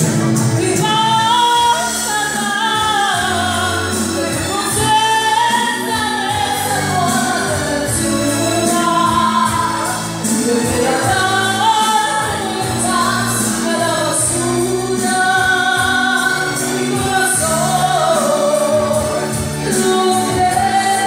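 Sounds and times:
backing track music: 0.0 - 21.0
woman singing karaoke: 0.0 - 21.0.

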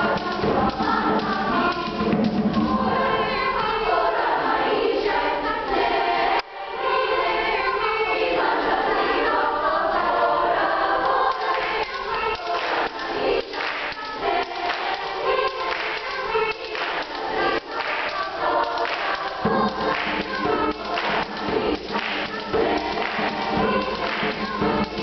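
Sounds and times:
choir singing upbeat song: 0.0 - 25.0
rhythmic hand claps: 0.0 - 25.0.

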